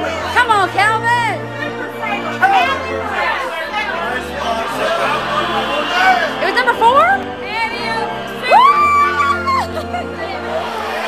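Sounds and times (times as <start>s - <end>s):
people shouting and chattering: 0.0s - 11.0s
steady music-like tones: 0.0s - 11.0s.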